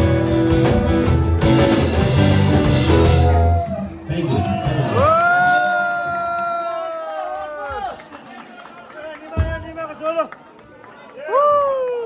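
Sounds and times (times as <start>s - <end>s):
man whooping: 3.5s - 7.9s.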